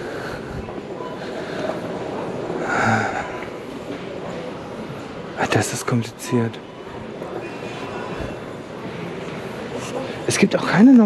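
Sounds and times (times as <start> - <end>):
retail store background din: 0.0 - 11.0.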